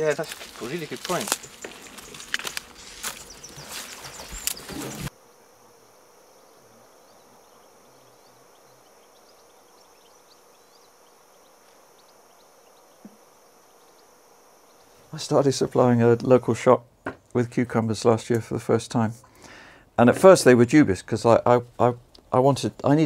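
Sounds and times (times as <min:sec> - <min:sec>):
rustling and crackling with clicks: 0:00.0 - 0:05.1
outdoor garden ambience: 0:00.0 - 0:23.0.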